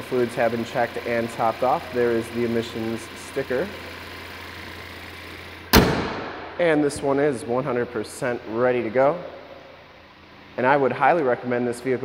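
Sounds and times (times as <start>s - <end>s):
car engine idling: 0.0s - 12.0s
car hood slamming shut: 5.7s - 6.6s.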